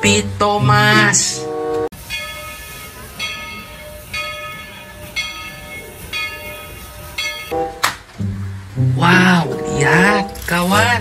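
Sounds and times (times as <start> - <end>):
locomotive bell ringing: 0.0 - 7.8, 9.0 - 11.0
steam train rumble: 0.0 - 11.0.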